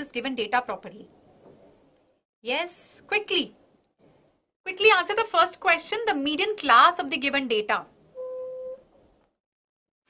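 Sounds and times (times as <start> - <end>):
electronic beep: 8.2 - 8.8.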